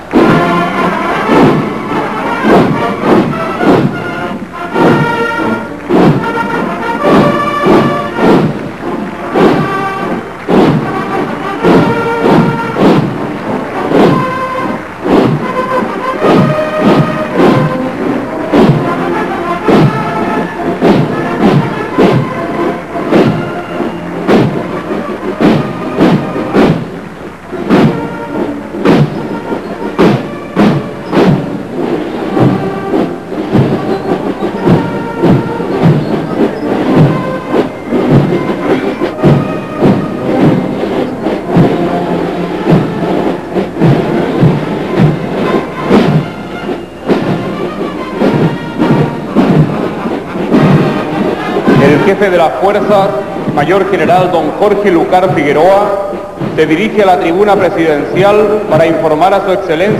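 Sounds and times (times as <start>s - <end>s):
brass band playing a march: 0.0s - 59.9s
snare and bass drums: 0.0s - 59.9s.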